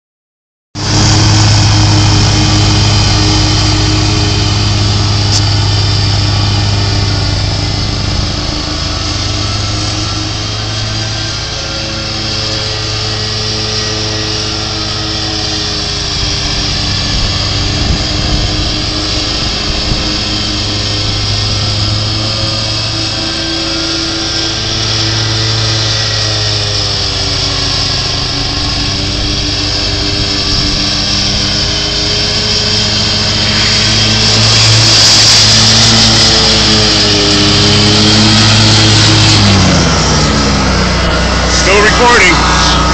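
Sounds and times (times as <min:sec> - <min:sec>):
riding lawn mower engine: 0:00.8 - 0:42.9.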